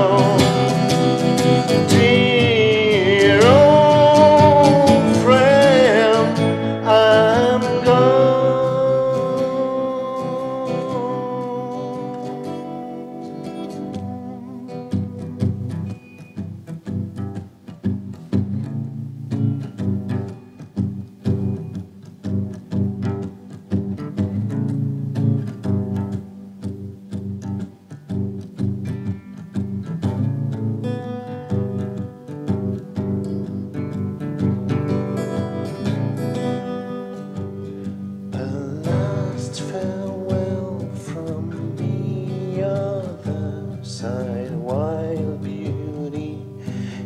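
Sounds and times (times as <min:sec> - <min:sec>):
man singing wordlessly: 0:00.0 - 0:15.9, 0:38.1 - 0:47.0
acoustic guitar plucking: 0:00.0 - 0:47.0.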